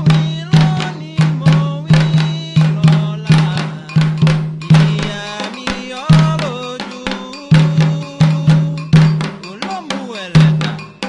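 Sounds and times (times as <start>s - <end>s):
bell playing rhythm: 0.0s - 11.0s
hand drums: 0.0s - 11.0s
person singing: 0.0s - 11.0s.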